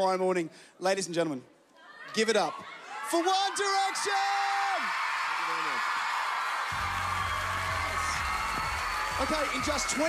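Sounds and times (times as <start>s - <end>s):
audience screaming and cheering: 2.5s - 10.0s.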